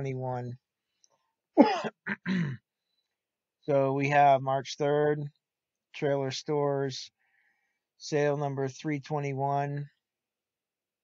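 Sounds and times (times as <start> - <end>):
man clearing his throat: 1.6 - 2.6.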